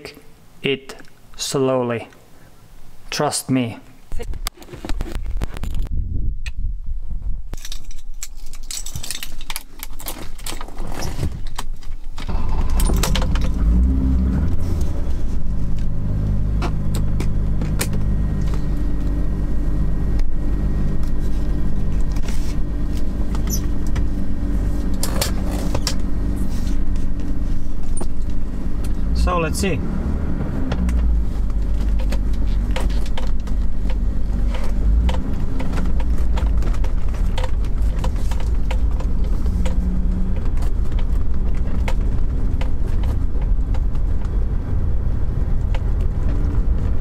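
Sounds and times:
car engine running: 0:12.3 - 0:47.0
scattered clicks and knocks: 0:30.7 - 0:44.4.

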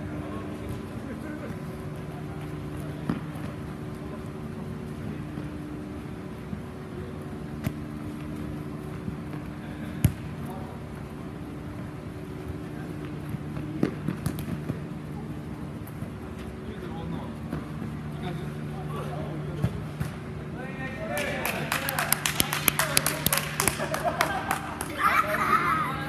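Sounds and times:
faint players' voices: 0:00.0 - 0:26.0
steady hum: 0:00.0 - 0:26.0
ball being kicked: 0:10.0 - 0:10.3.

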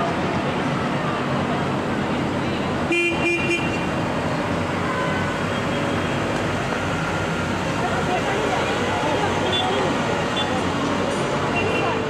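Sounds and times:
wheel loaders running: 0:03.9 - 0:12.0.

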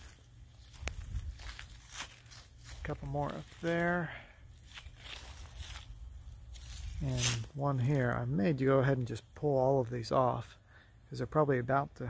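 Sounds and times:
soft crunches: 0:00.0 - 0:08.3.

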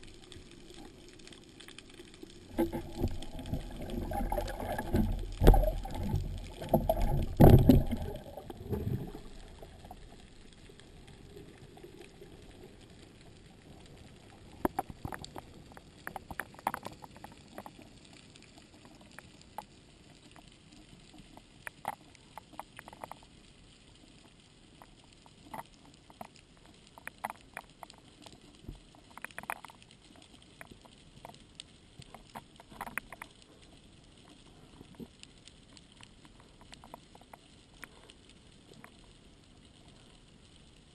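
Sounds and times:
faint ticks and crackles: 0:00.0 - 0:40.9
underwater rumble: 0:00.0 - 0:40.9.

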